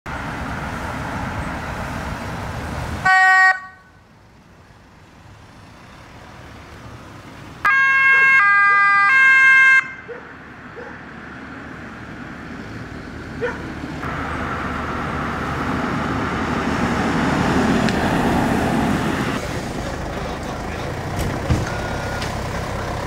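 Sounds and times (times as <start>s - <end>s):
police cars passing: 0.1s - 23.0s
loud horn blast: 3.0s - 3.9s, 7.7s - 10.0s.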